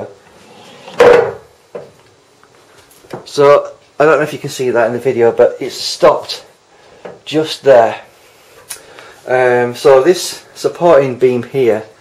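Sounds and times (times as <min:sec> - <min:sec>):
pool ball knocking wood: 0:00.7 - 0:02.0.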